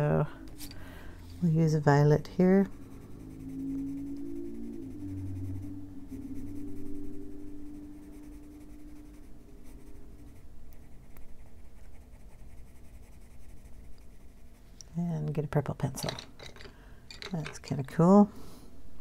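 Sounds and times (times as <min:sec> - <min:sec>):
low steady hum: 0:00.0 - 0:19.0
coloured pencil scratching on paper: 0:01.4 - 0:14.6.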